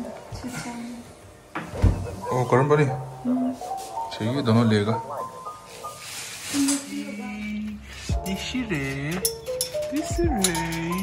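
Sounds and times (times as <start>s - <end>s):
refrigerator door shutting: 1.6s - 2.2s.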